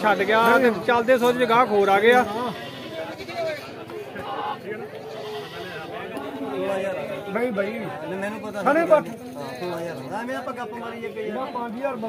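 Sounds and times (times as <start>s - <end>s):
people's voices: 0.0s - 12.0s
goat bleating: 1.9s - 3.8s, 4.9s - 6.0s.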